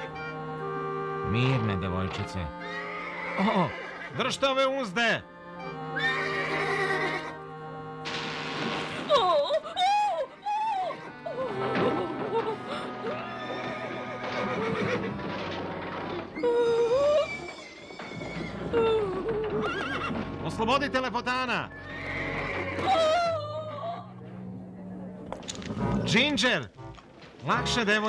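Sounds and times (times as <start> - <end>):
background music: 0.0 - 28.0
horses whinnying: 2.6 - 4.3, 6.0 - 7.4, 9.0 - 20.4, 21.7 - 24.2.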